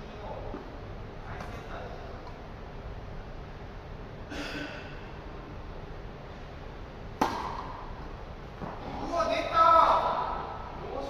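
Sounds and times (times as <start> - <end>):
tennis racket hitting ball: 7.2 - 7.8.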